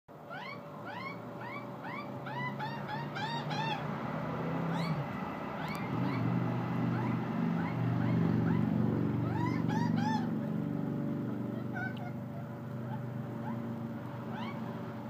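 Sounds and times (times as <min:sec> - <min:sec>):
young magpie begging squawks: 0:00.3 - 0:03.8, 0:06.9 - 0:10.4, 0:11.4 - 0:13.6, 0:14.3 - 0:14.7.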